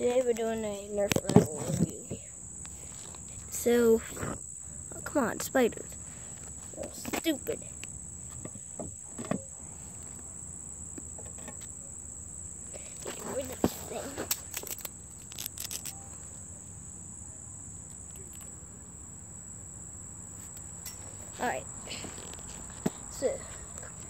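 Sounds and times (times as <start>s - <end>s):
high-pitched insect drone: 1.8s - 24.0s.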